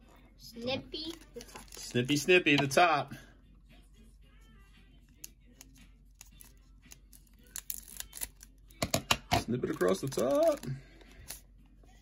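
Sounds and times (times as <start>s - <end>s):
scissors snipping foil wrapper: 5.2s - 9.0s, 9.6s - 11.4s.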